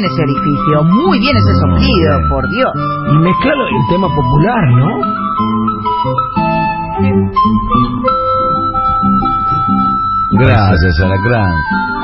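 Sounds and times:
flute melody: 0.0 - 12.0
plucked guitar: 0.0 - 12.0.

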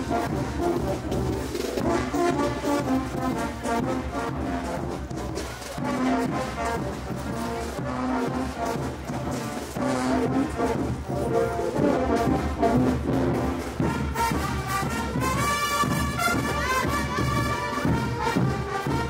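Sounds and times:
brass band playing dance music: 0.0 - 19.0
percussion beat: 0.0 - 19.0.

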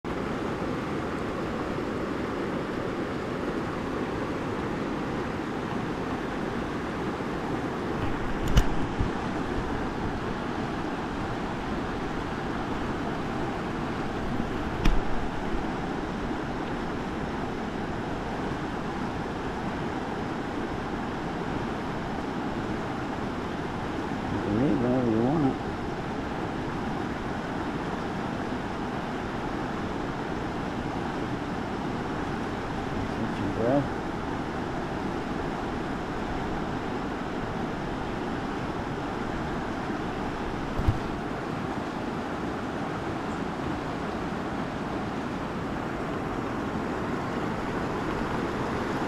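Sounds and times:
water rushing over rocks: 0.1 - 49.0.

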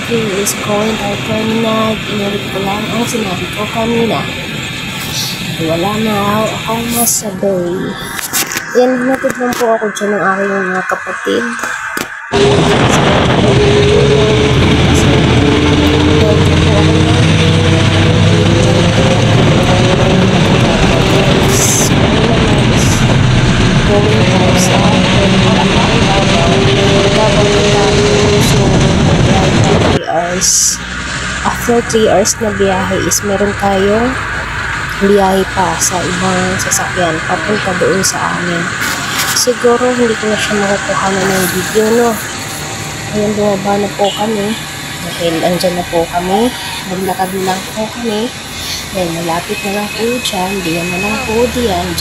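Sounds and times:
person's voice: 0.0 - 4.4, 5.0 - 23.2, 23.8 - 34.2, 34.9 - 52.0
diesel engine running: 0.0 - 11.7, 12.3 - 52.0
road and wind noise: 0.0 - 52.0
street traffic: 0.0 - 52.0.

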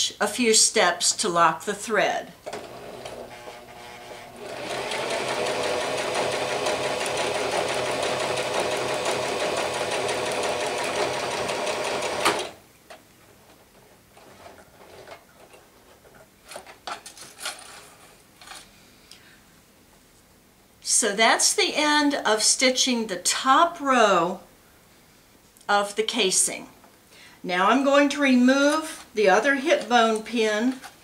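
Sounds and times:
electric sewing machine running: 2.5 - 12.6.

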